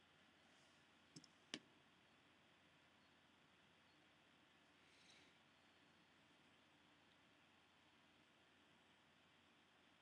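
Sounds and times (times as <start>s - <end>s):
computer mouse clicks: 1.1s - 1.7s.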